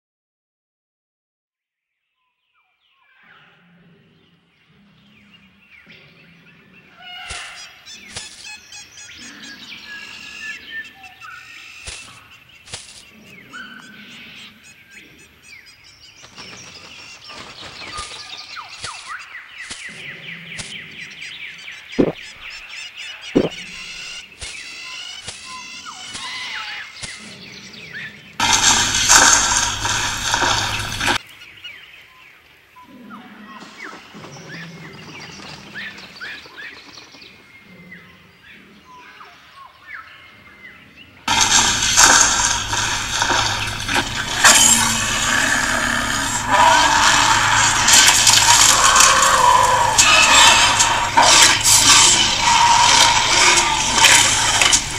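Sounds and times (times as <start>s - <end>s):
birds chirping and calling: 2.2s - 54.9s
dinosaur roar: 23.4s - 23.9s, 27.2s - 31.2s, 41.3s - 54.9s.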